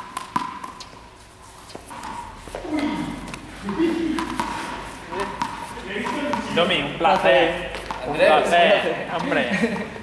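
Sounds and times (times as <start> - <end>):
juggling balls tapping: 0.0 - 8.1.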